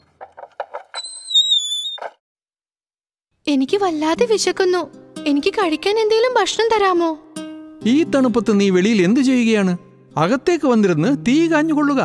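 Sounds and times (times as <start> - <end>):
high whistle-like tone: 1.0 - 2.1.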